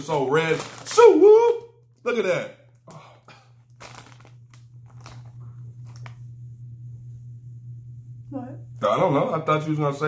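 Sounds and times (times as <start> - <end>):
foil chip bag crinkling: 0.0 - 6.2
low hum: 0.2 - 10.0.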